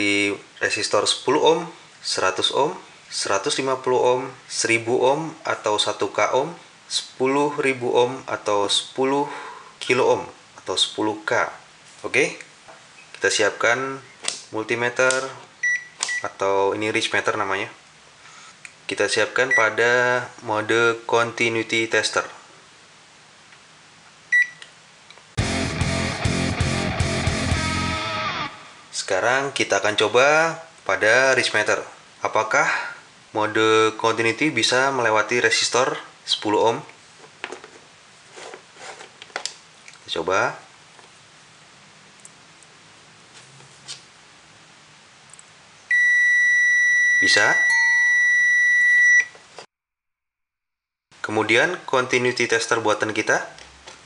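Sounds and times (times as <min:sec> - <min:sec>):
multimeter beep: 0:15.6 - 0:16.3, 0:24.3 - 0:24.6, 0:45.9 - 0:49.4
rock guitar music: 0:25.4 - 0:28.9.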